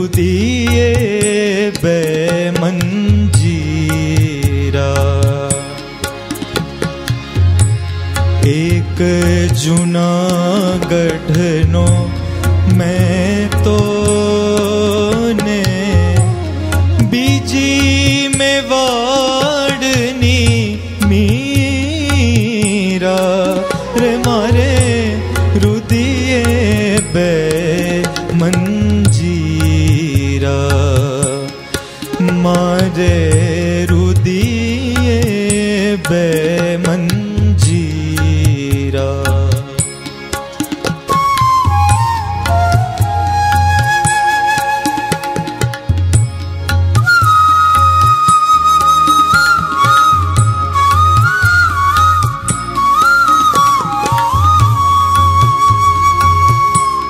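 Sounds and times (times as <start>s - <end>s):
harmonium melody: 0.0s - 57.0s
tabla strokes: 0.0s - 57.0s
person singing: 8.4s - 39.8s.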